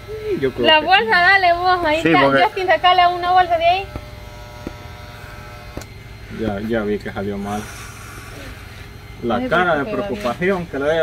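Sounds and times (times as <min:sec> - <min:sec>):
electric hair clippers buzzing: 0:00.0 - 0:11.0.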